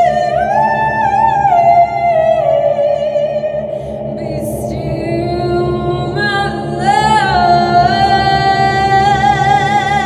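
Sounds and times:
low pulsing backing track: 0.0 - 10.0
woman singing into microphone: 0.0 - 10.0.

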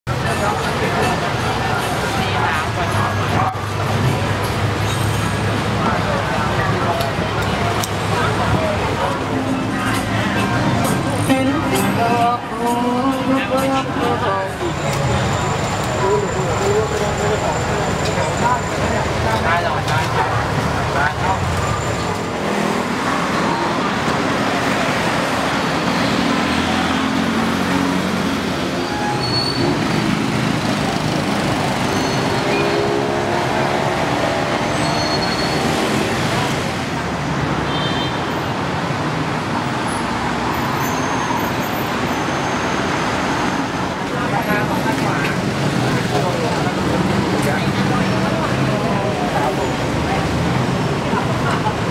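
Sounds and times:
road traffic noise: 0.0 - 51.9
indistinct voices and chatter: 0.1 - 37.6, 38.3 - 51.9.

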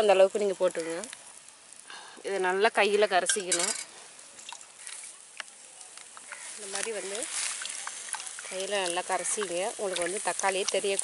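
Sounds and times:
woman speaking: 0.0 - 1.1, 2.2 - 3.8, 6.6 - 7.3, 8.4 - 11.0
ladle clinking against steel bowl: 3.2 - 3.9.

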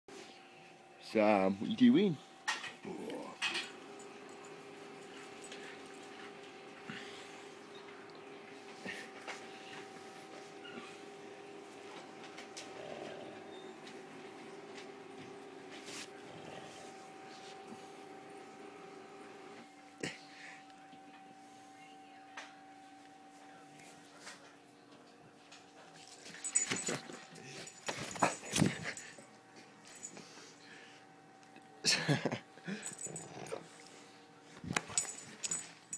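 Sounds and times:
faint dog whine: 10.4 - 11.2.

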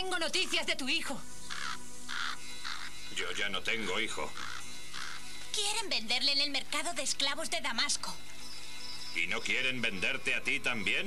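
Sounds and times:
soft music underscore: 0.0 - 11.0
crow cawing: 1.4 - 3.1, 4.1 - 5.8.

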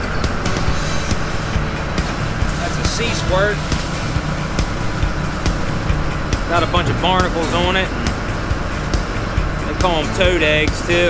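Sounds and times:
boat engine rumbling: 0.0 - 11.0.

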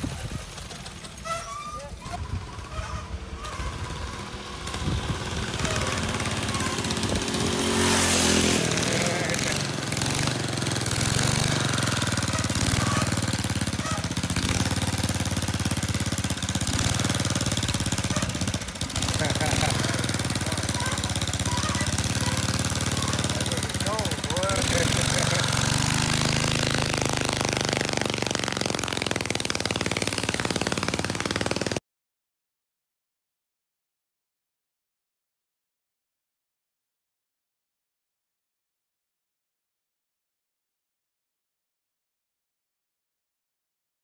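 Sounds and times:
engine running: 0.0 - 31.8
indistinct voices: 8.6 - 9.8, 19.1 - 26.8.

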